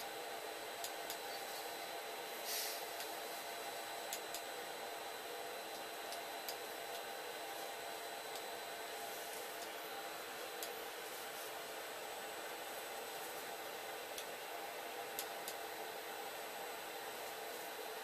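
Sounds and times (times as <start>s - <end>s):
electrical hum and hiss: 0.0s - 18.0s.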